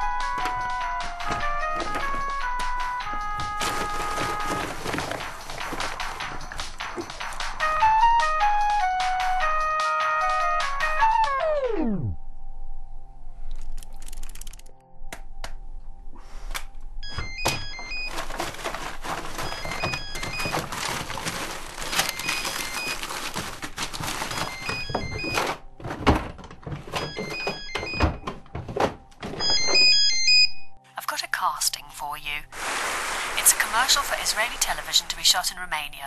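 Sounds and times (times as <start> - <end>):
music: 0.0 - 32.6, 33.4 - 36.0
thuds knocks and clattering: 0.2 - 7.6, 23.1 - 29.9
telephone ringing: 24.2 - 25.6, 26.9 - 28.2.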